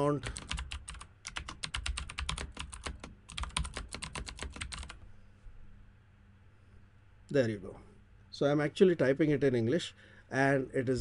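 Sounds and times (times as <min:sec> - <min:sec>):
keyboard typing: 0:00.1 - 0:05.0.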